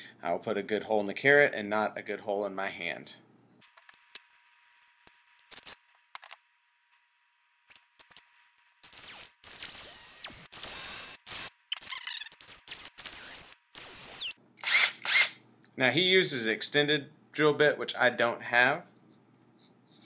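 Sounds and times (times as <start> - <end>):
cordless drill boring: 8.8 - 11.5, 12.1 - 15.4.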